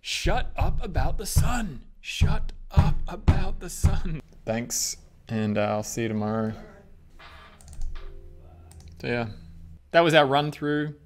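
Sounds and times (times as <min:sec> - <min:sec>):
faint music: 0:04.5 - 0:10.9
computer keyboard clicks: 0:07.6 - 0:08.0.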